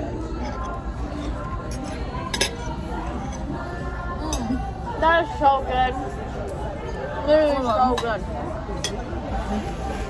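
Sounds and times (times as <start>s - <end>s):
restaurant chatter: 0.0s - 10.0s
cutlery clinking on a plate: 0.4s - 3.5s.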